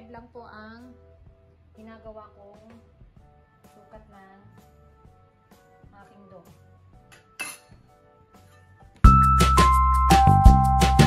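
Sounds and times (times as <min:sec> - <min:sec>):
metal scraper clinking on table: 0:07.1 - 0:07.8.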